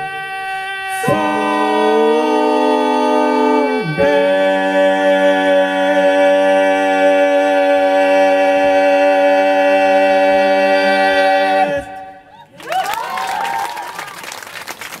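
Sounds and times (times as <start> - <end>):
male a cappella chord: 0.0 - 12.0
audience applause: 12.5 - 15.0.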